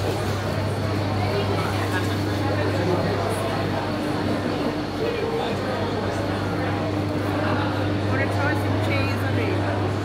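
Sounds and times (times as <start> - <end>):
indistinct chatter of shoppers: 0.0 - 10.0.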